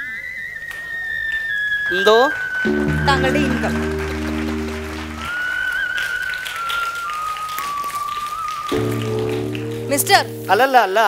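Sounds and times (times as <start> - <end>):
low backing music: 2.7 - 5.3, 8.8 - 10.8.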